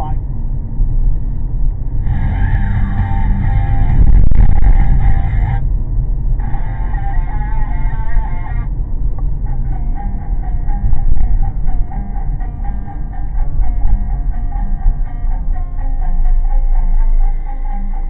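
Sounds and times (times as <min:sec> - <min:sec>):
guitar music on car radio: 0:00.0 - 0:18.0
low rumble of moving car: 0:00.0 - 0:18.0.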